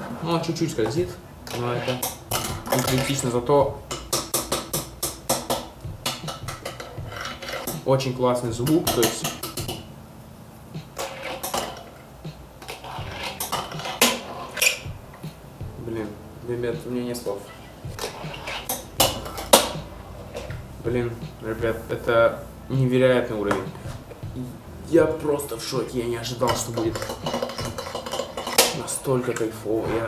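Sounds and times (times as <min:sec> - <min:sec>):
fingerboard clacking on hollow box: 0:03.9 - 0:07.8.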